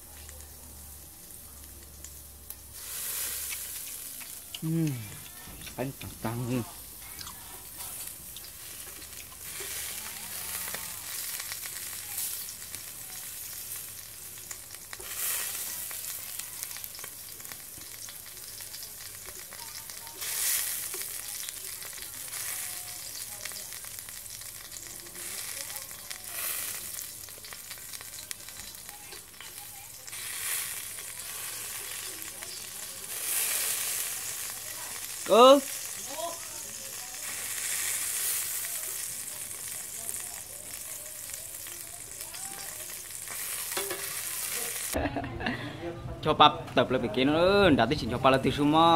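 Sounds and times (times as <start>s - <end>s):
meat sizzling on a grill: 0.0s - 45.0s, 47.8s - 48.9s.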